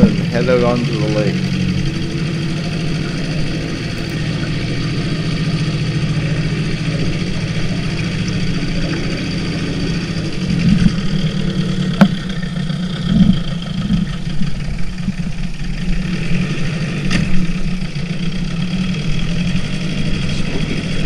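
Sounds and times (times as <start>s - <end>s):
outboard motor running: 0.0s - 21.0s.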